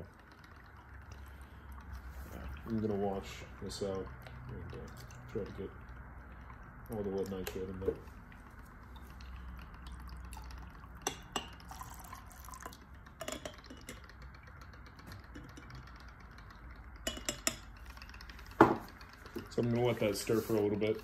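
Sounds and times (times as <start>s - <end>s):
liquid trickling into glass beaker: 0.0s - 21.0s.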